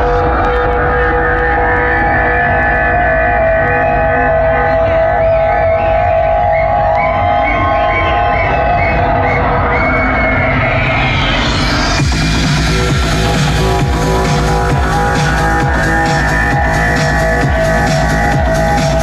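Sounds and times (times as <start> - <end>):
live electronic music: 0.0 - 19.0
rising noisy sweep: 0.0 - 19.0.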